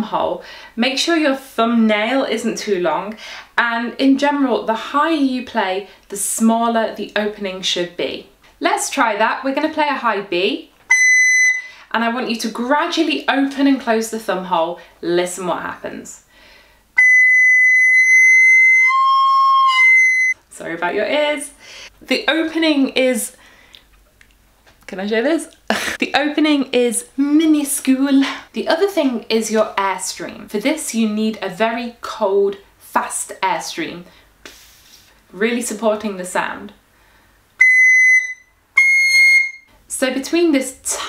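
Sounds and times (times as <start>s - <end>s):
shrill recorder note: 10.9s - 11.7s, 17.0s - 20.4s, 37.6s - 39.7s.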